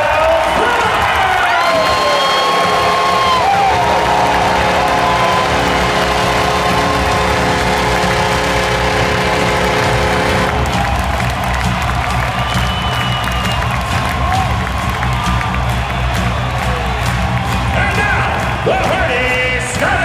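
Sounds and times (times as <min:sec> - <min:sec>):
arena crowd cheering: 0:00.0 - 0:20.0
held musical chord: 0:02.5 - 0:10.9.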